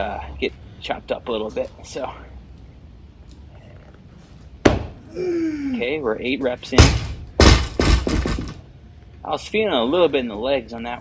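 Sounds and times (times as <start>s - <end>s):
barbell thudding and bouncing on ground: 4.6s - 5.0s, 6.7s - 8.6s.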